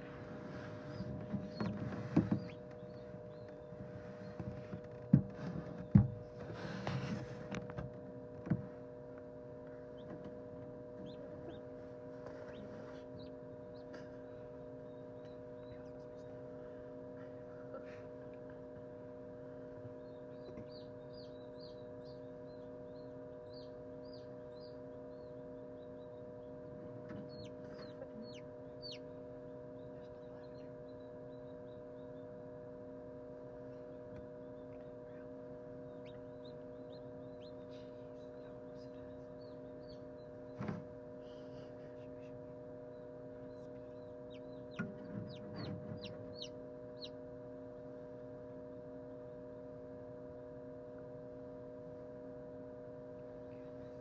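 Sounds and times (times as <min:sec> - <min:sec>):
incubator hum: 0:00.0 - 0:54.0
chick peeping: 0:00.8 - 0:03.5, 0:11.0 - 0:14.0, 0:27.0 - 0:29.2, 0:29.8 - 0:31.5, 0:35.9 - 0:40.3, 0:43.5 - 0:47.2
thump: 0:40.6 - 0:40.8.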